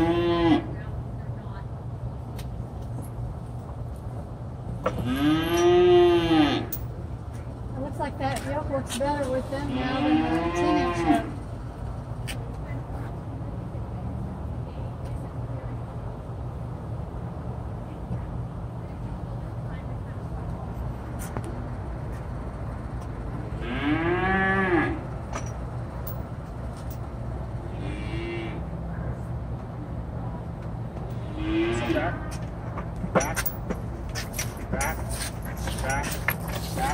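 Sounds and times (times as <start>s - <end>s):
steady low hum: 0.0s - 36.9s
cattle mooing: 5.0s - 6.7s, 9.7s - 11.3s, 31.2s - 32.0s.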